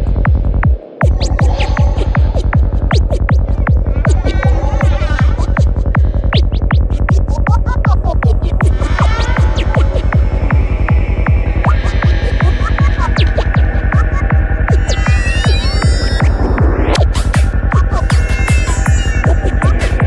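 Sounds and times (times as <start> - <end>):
heavy bassline: 0.0 - 20.0
steady kick drum: 0.0 - 20.0.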